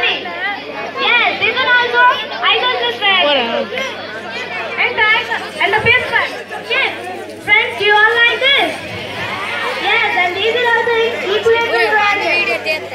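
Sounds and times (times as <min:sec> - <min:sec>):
children chattering: 0:00.0 - 0:12.9.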